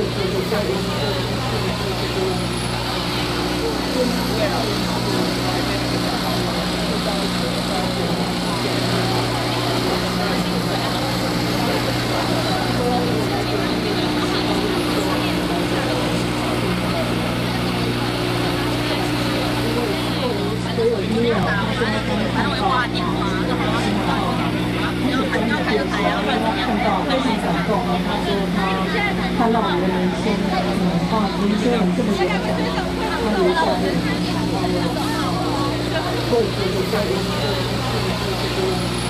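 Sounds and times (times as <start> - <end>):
indistinct voices: 0.0 - 39.0
steady low hum: 0.0 - 39.0.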